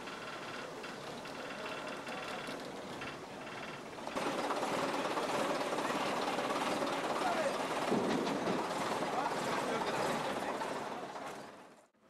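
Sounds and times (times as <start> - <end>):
diesel engine clattering: 0.0 - 11.7.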